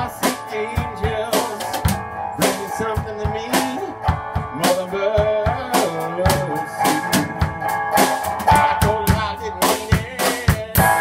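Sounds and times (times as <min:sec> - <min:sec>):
drum kit beat: 0:00.0 - 0:11.0
live band playing: 0:00.0 - 0:11.0.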